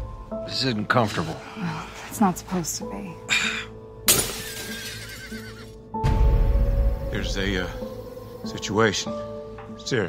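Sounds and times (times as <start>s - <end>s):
orchestral film music: 0.0s - 10.0s
horse whinnying: 4.8s - 5.8s.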